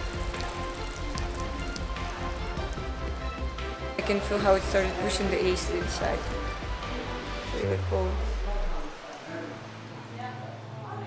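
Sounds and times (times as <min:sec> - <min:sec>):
water pouring into stone basin: 0:00.0 - 0:09.9
background music: 0:00.0 - 0:11.0.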